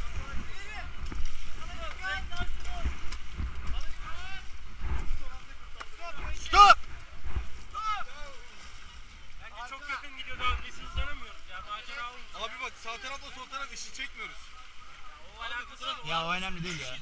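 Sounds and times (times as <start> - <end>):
wind buffeting microphone: 0.0 - 7.9
people calling and shouting: 0.0 - 17.0
river water: 0.0 - 17.0
loud yell: 6.4 - 6.8.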